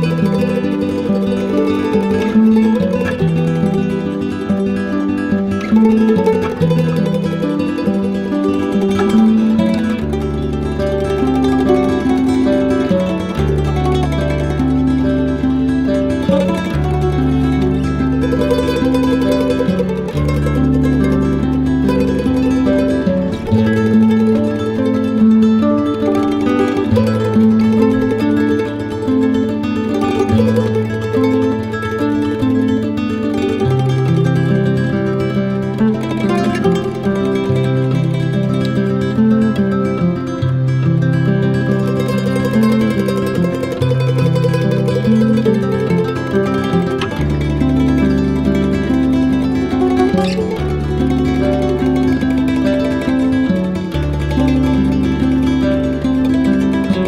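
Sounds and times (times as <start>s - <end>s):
held bass notes: 0.0s - 57.0s
plucked-string melody: 0.0s - 57.0s.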